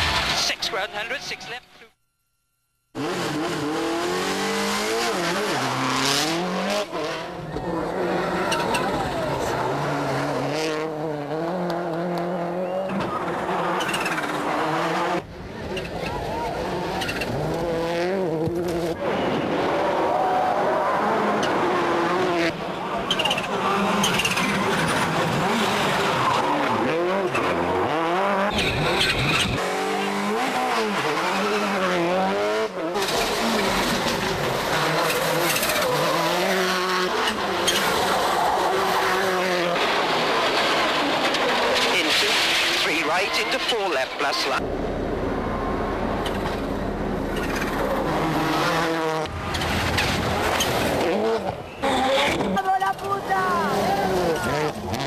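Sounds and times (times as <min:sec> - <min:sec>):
rally car engines revving: 0:02.9 - 0:55.0.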